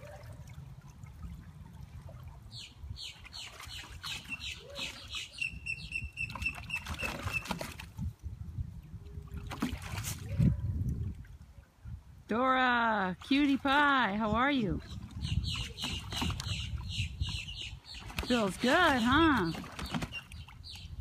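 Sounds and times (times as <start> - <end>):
water sloshing and splashing: 0.0 - 5.3, 6.1 - 11.8, 13.0 - 21.0
bird singing: 2.5 - 7.4, 14.8 - 21.0.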